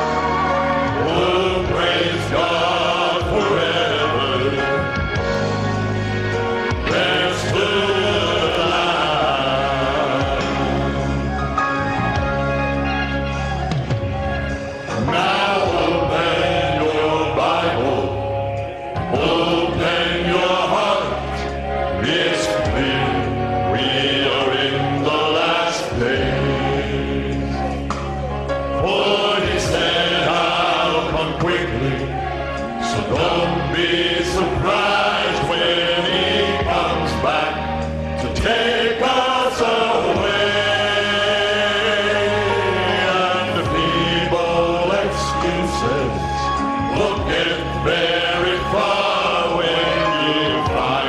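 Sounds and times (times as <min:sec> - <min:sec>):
male vocal group singing gospel: 0:00.0 - 0:51.0.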